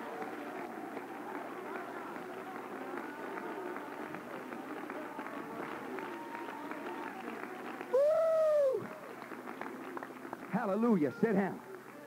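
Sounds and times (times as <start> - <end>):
hand clapping: 0.0 - 12.0
loud held shout: 5.8 - 8.9.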